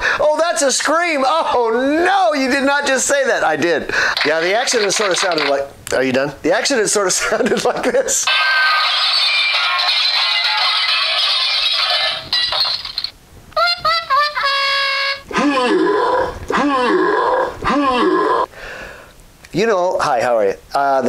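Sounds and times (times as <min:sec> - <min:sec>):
swooping voice-like cries: 0:13.6 - 0:18.5.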